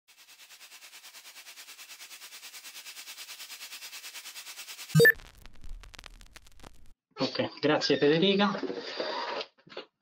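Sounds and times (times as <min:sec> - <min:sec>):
rapid pulsing hiss: 0:00.1 - 0:04.9.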